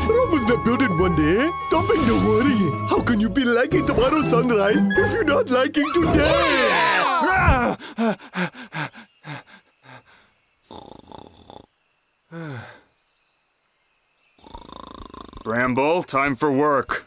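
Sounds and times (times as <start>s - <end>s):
breathy sound: 7.4s - 11.2s, 12.3s - 12.9s.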